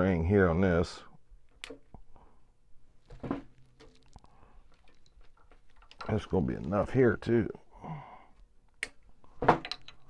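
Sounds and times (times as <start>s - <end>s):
faint clicks and handling sounds: 3.0s - 7.4s.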